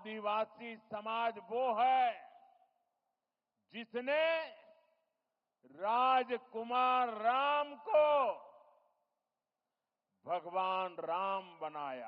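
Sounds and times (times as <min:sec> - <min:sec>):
man speaking into a microphone: 0:00.0 - 0:02.6, 0:03.6 - 0:05.0, 0:05.6 - 0:08.8, 0:10.2 - 0:12.0.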